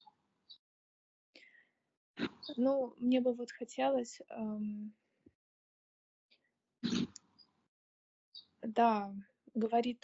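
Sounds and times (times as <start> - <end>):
woman speaking: 2.5 - 5.0, 8.6 - 10.0.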